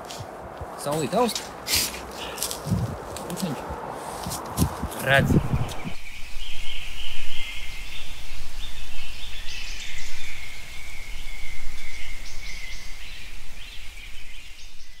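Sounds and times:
birds chirping: 0:04.9 - 0:15.0
low rumble: 0:05.2 - 0:06.0.

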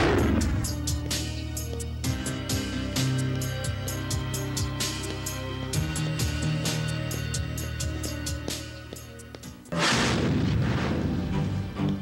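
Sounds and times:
background music: 0:00.0 - 0:12.0
boom and crash hit: 0:09.8 - 0:11.4.

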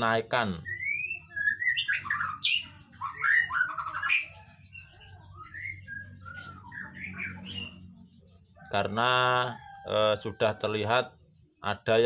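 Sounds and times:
bird chirping and whistling: 0:00.6 - 0:07.9.

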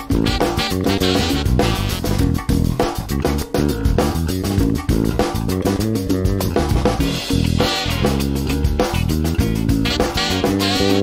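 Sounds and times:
drum kit beat: 0:00.0 - 0:11.0
electric bass line: 0:00.0 - 0:11.0.

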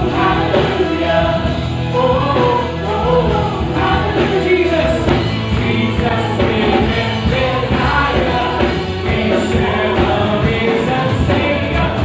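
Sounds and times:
congregation singing along: 0:00.0 - 0:12.0
worship team singing with band: 0:00.0 - 0:12.0.

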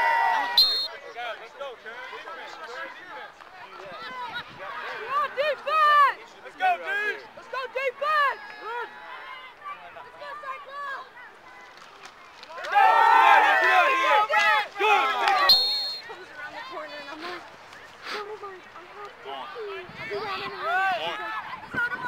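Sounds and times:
crowd cheering: 0:00.0 - 0:22.0
referee's whistle blast: 0:00.5 - 0:01.0, 0:15.4 - 0:16.1
spectators shouting: 0:12.5 - 0:16.8.

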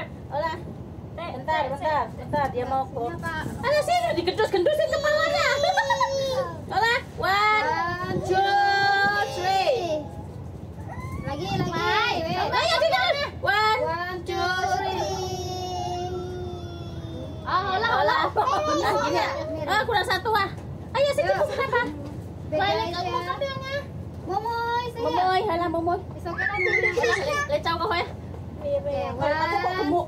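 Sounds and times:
women and children chattering: 0:00.0 - 0:30.0.

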